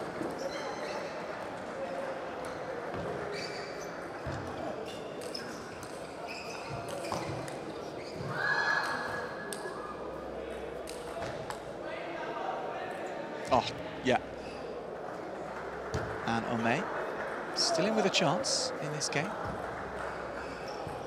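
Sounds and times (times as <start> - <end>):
hall murmur and voices: 6.9 - 21.0.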